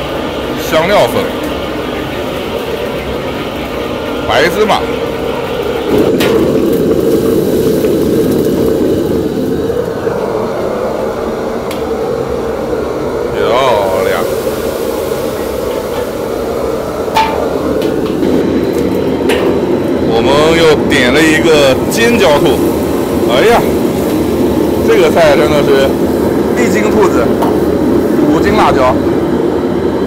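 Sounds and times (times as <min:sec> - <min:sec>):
gas burner roaring: 0:00.0 - 0:30.0
chilies sizzling in hot oil: 0:00.1 - 0:10.0, 0:13.4 - 0:29.0
steel ladle clanking on wok: 0:17.1 - 0:18.0.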